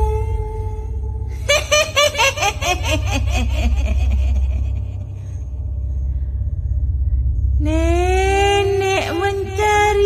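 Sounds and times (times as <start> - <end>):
deep low rumbling drone: 0.0 - 10.0
person laughing: 1.4 - 5.1.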